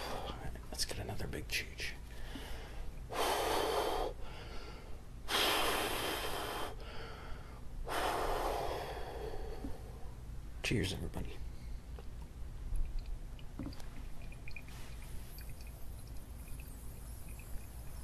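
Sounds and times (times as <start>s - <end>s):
man breathing heavily: 2.1s - 10.2s.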